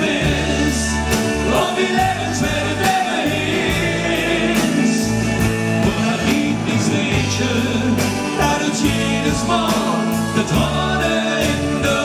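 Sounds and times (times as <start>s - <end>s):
live band playing pop song: 0.0s - 12.0s
steady drum beat: 0.0s - 12.0s.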